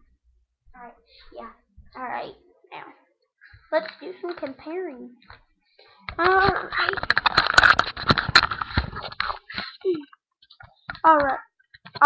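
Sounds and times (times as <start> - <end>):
fingers handling a webcam: 6.1 - 11.0.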